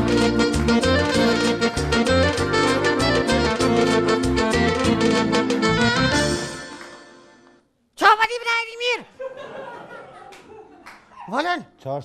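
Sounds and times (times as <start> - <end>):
bass beat: 0.0 - 6.5
saxophone: 0.0 - 7.5
keyboard: 0.0 - 7.6.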